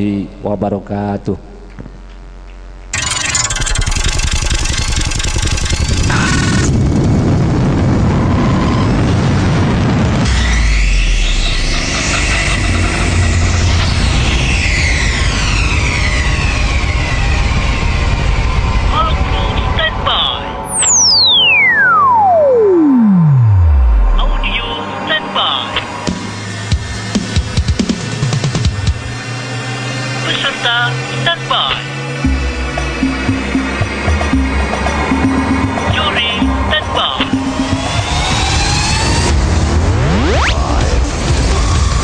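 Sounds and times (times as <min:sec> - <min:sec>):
engine revving whine: 0:02.9 - 0:25.2, 0:25.8 - 0:42.0
deep low rumble: 0:05.5 - 0:25.0.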